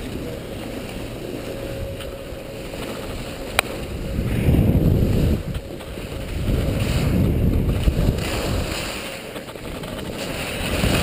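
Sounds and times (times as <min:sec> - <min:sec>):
wind rushing over microphone: 0:03.0 - 0:11.0
skis sliding on packed snow: 0:04.2 - 0:11.0.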